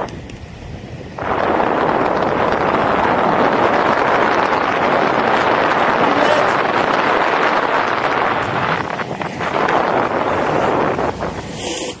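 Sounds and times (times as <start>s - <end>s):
skate wheels rolling on asphalt: 0.0s - 12.0s
wind rushing over microphone: 0.0s - 12.0s
sharp hiss: 11.4s - 12.0s.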